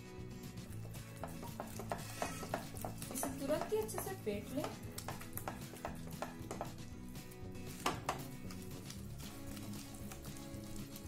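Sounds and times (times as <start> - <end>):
soft background music: 0.0 - 11.0
spatula scraping in a pan: 0.3 - 11.0.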